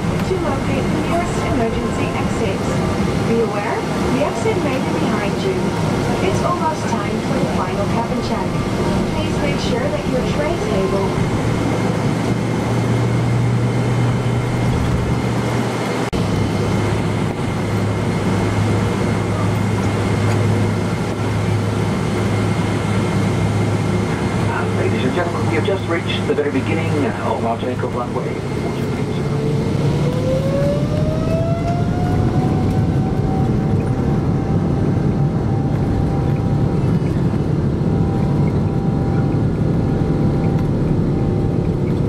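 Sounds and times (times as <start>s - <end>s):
airliner engines droning: 0.0s - 42.0s
low hum: 0.0s - 42.0s
indistinct voices: 0.2s - 11.8s.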